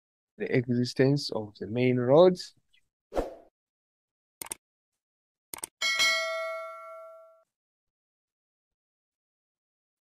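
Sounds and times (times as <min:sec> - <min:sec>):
notification bell ding: 0:05.8 - 0:07.4.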